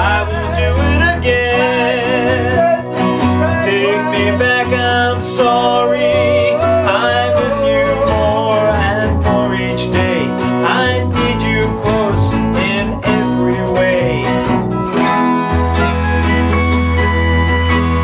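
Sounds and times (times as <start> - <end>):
man singing: 0.0 - 14.6
acoustic guitar strumming: 0.0 - 18.0
electric keyboard chords: 0.0 - 18.0.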